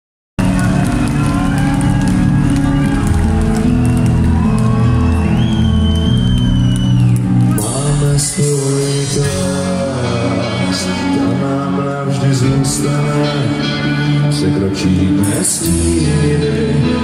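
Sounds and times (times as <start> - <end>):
live rock band playing: 0.4 - 17.0.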